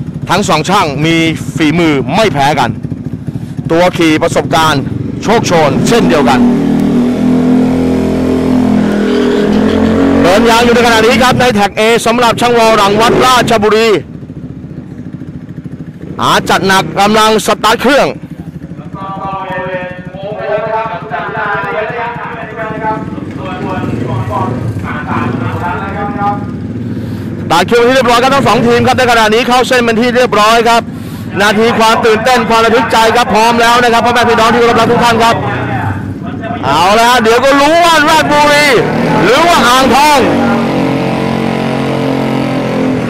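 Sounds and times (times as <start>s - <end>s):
scooter engines running: 0.0s - 43.0s.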